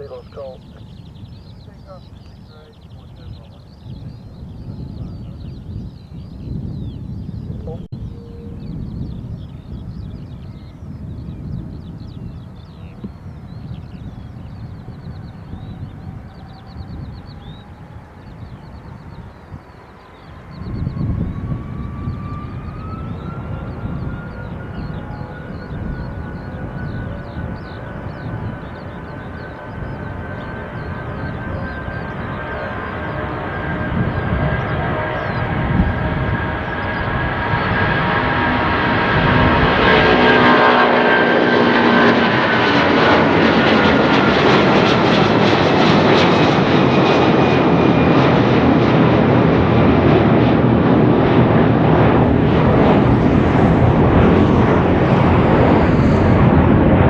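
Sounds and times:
jet airliner taking off: 0:00.0 - 0:57.0.

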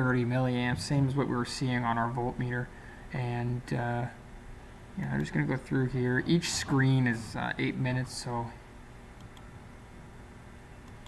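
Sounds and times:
faint mouse clicks: 0:09.2 - 0:09.5.

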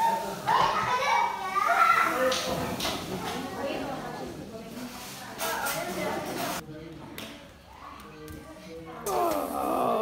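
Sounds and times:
people chattering: 0:00.0 - 0:10.0
children's voices: 0:00.5 - 0:02.2.

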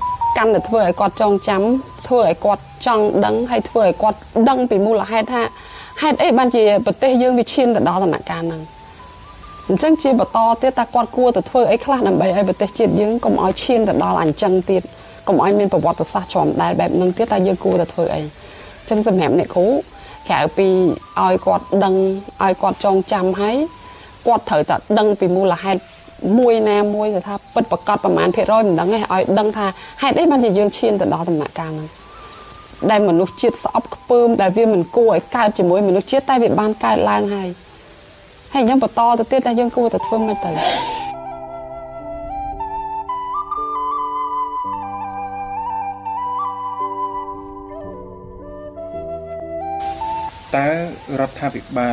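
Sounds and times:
high-pitched insect drone: 0:00.0 - 0:41.4, 0:49.6 - 0:51.9
person speaking: 0:40.0 - 0:41.1.

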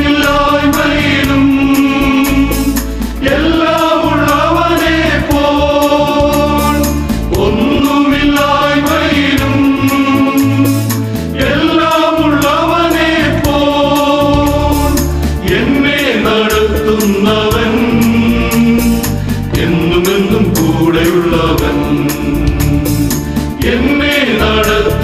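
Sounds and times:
men's choir singing a hymn: 0:00.0 - 0:25.0.

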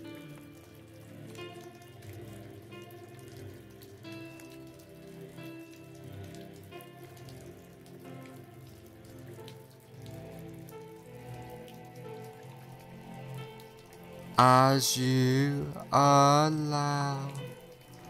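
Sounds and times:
recorded rain: 0:00.0 - 0:18.0
soft ambient music: 0:00.0 - 0:18.0.

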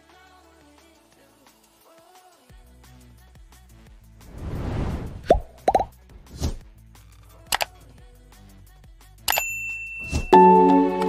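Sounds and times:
soft swish: 0:04.2 - 0:05.6, 0:06.2 - 0:06.6
cartoon pops: 0:05.2 - 0:05.9
quiet background music: 0:05.5 - 0:11.0.

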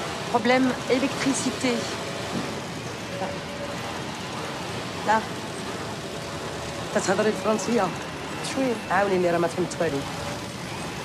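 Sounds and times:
industrial sewing machines running: 0:00.0 - 0:11.0.

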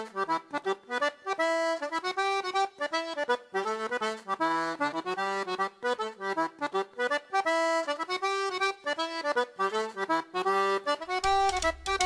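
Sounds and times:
accordion playing quick notes: 0:00.0 - 0:12.0.

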